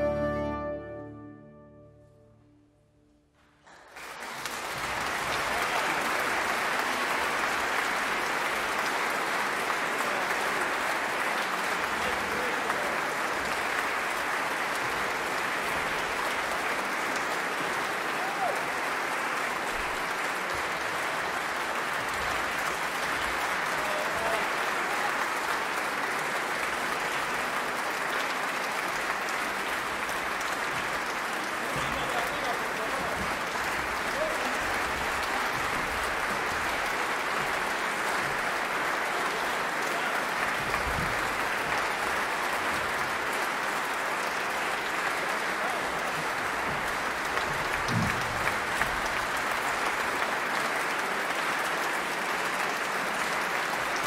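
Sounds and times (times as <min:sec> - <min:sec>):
audience applauding: 0:03.5 - 0:54.0.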